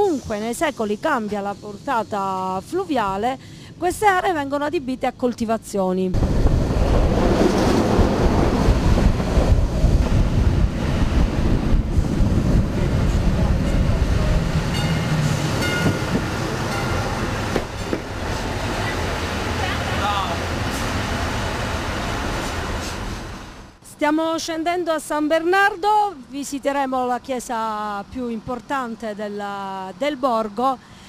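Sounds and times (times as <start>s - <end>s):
train wheels rumbling on rail: 0.0s - 3.3s, 6.2s - 23.8s.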